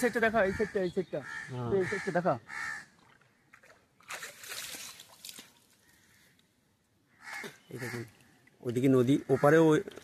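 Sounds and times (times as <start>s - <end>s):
crows cawing: 0.0s - 3.6s, 5.8s - 8.3s, 9.1s - 9.7s.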